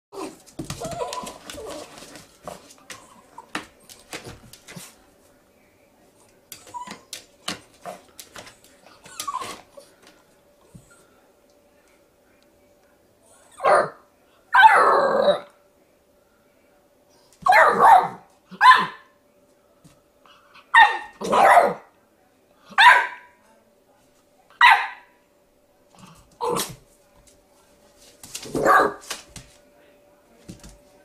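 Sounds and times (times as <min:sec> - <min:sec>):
puppy barking: 0:17.5 - 0:19.1, 0:20.7 - 0:21.9, 0:22.8 - 0:23.3, 0:24.6 - 0:25.1, 0:28.5 - 0:29.0.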